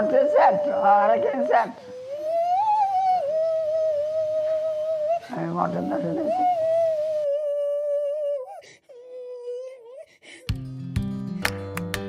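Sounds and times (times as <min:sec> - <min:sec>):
high voice holding notes: 0:00.0 - 0:08.0.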